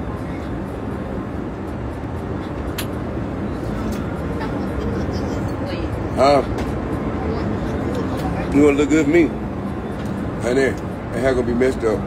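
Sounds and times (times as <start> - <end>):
jet cabin engine drone: 0.0 - 12.0.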